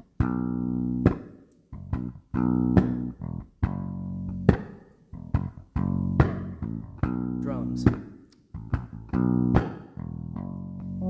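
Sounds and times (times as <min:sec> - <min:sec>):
electric bass plucked notes: 0:00.0 - 0:11.0.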